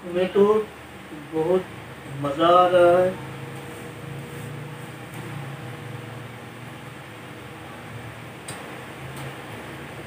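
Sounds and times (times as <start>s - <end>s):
room noise hiss: 0.0s - 10.0s
steady low hum: 0.0s - 10.0s.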